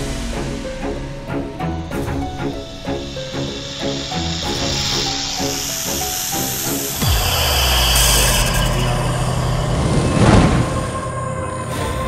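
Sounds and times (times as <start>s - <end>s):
deep rumble with low drones: 0.0s - 12.0s
loud whoosh: 0.0s - 12.0s.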